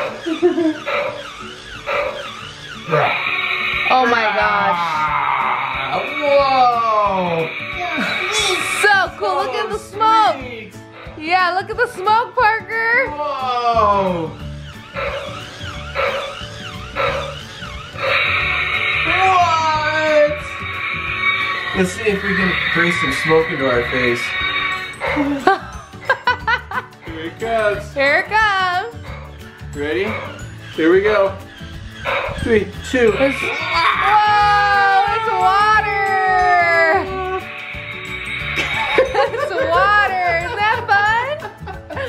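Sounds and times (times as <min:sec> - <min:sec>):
toy warbling electronic tones: 0:00.0 - 0:09.7, 0:14.4 - 0:25.8, 0:30.1 - 0:40.7
musical backing: 0:00.0 - 0:42.0
harsh sound with falling tones: 0:18.0 - 0:25.5.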